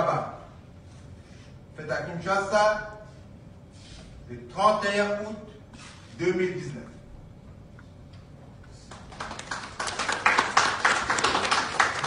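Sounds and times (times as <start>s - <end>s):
people applauding: 8.9s - 12.0s.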